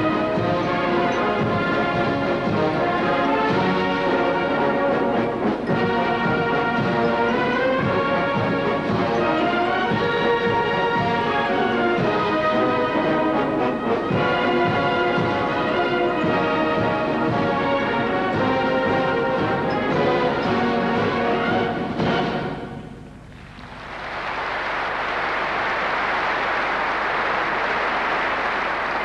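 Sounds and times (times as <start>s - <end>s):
military bands playing: 0.0s - 29.0s
audience applause: 23.3s - 29.0s.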